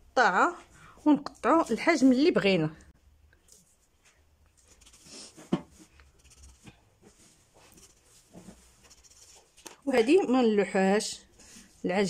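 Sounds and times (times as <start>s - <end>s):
soft scrapes: 3.5s - 9.6s.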